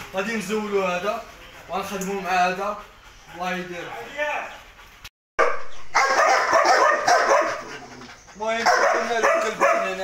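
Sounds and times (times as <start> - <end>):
dog barking rapidly: 5.4 - 10.0.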